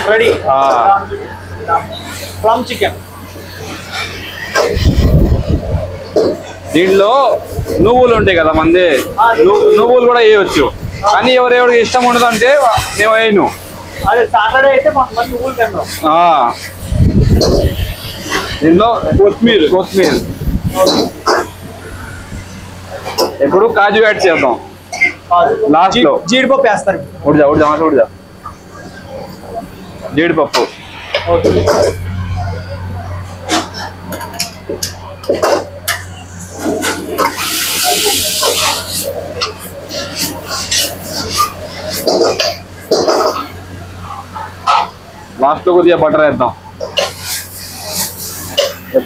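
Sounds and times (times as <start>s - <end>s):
kitchen exhaust hum: 0.0s - 49.0s
gas wok burner hissing: 11.7s - 23.4s, 33.4s - 43.4s, 46.8s - 49.0s.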